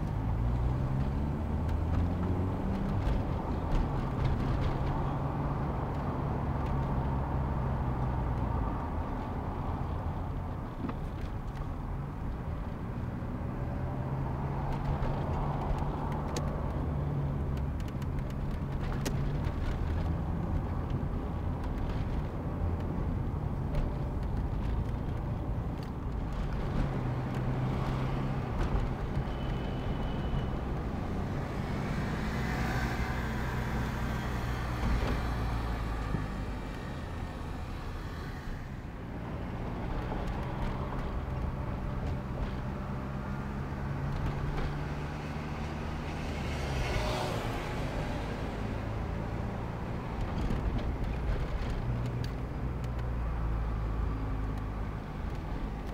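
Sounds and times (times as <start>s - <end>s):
car engine hum: 0.0s - 55.9s
vehicles passing: 0.0s - 55.9s.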